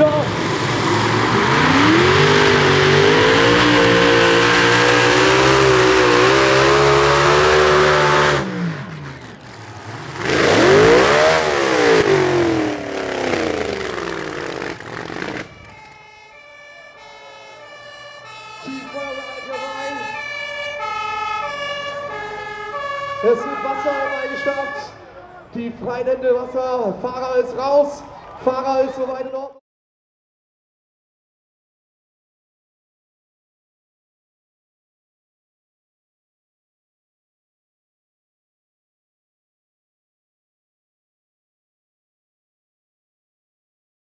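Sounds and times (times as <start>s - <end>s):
tractor engine at full throttle: 0.0s - 24.8s
two-tone siren: 1.4s - 8.4s, 10.6s - 25.0s.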